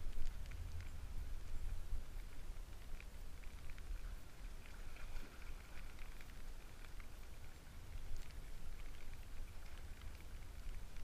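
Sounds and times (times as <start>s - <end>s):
light ticks: 0.0s - 11.0s
wind rumbling on microphone: 0.0s - 11.0s.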